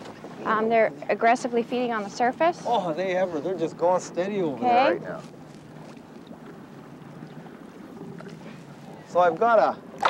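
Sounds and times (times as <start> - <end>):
water around boat: 0.0 - 10.0
wind: 0.0 - 10.0.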